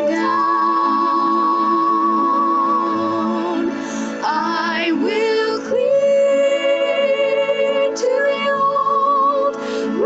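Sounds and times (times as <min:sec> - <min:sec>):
woman singing: 0:00.0 - 0:10.0.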